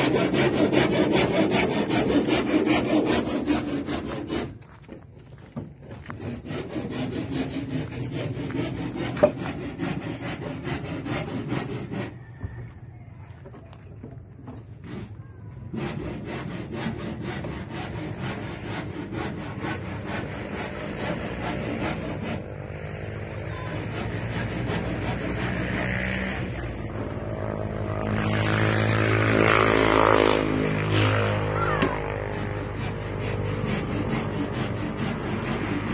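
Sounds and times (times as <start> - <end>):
handsaw cutting wood: 0.0 - 5.0, 5.6 - 12.5, 14.1 - 35.9
engine running: 20.1 - 35.9.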